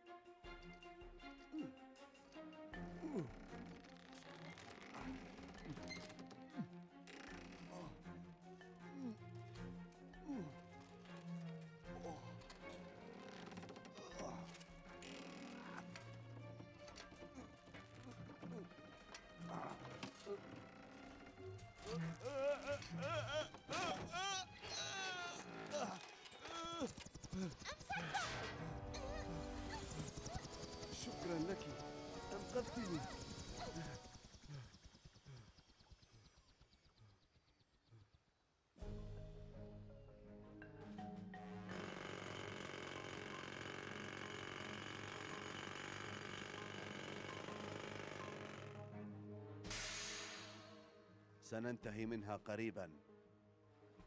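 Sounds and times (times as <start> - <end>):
jackhammer rattling: 41.7 - 48.8.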